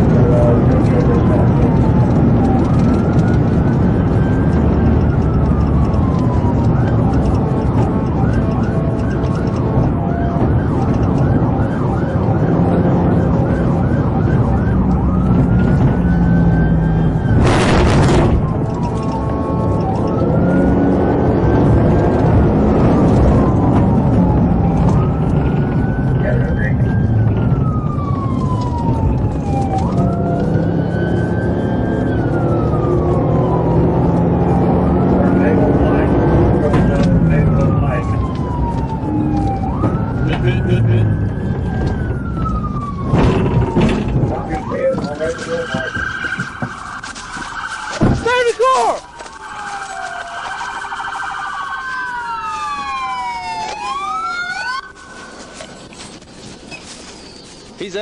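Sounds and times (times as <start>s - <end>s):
fast siren warble: 0.0s - 56.2s
engine and road noise: 0.0s - 58.0s
police siren wailing: 0.0s - 58.0s.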